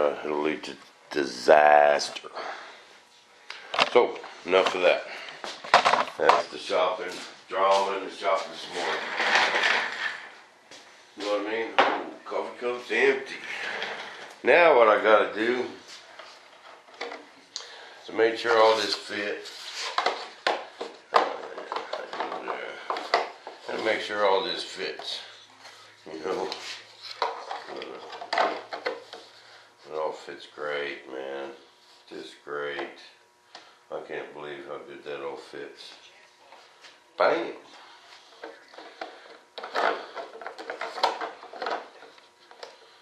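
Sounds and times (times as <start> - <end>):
plastic parts clicking and tapping: 5.7 - 6.4, 38.4 - 42.8.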